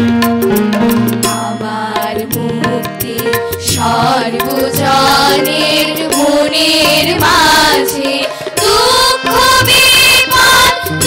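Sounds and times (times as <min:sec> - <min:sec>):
instrumental accompaniment: 0:00.0 - 0:11.0
girls' choir singing: 0:01.5 - 0:11.0.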